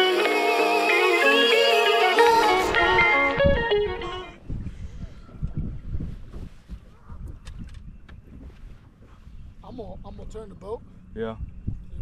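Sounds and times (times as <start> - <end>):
guitar music: 0.0 - 4.4
wind buffeting microphone: 2.7 - 12.0.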